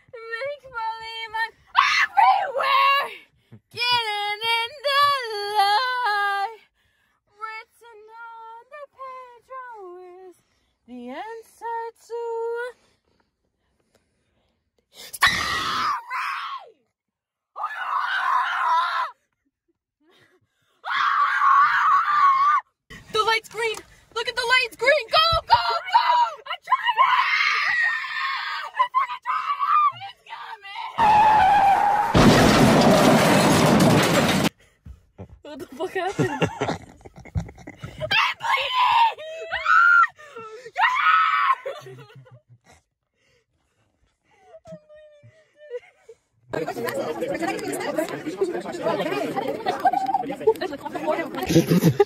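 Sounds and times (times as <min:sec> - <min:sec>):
young person screaming: 0:15.2 - 0:16.7, 0:17.6 - 0:19.2, 0:20.8 - 0:22.6, 0:40.8 - 0:41.8.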